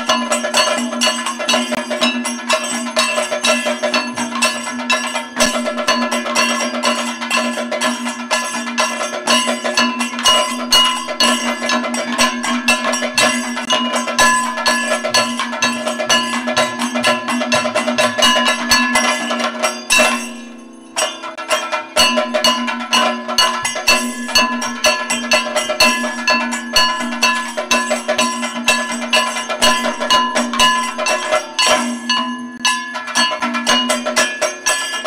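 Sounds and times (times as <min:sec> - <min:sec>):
rapid drum strokes: 0:00.0 - 0:35.0
ringing metal percussion: 0:00.0 - 0:35.0.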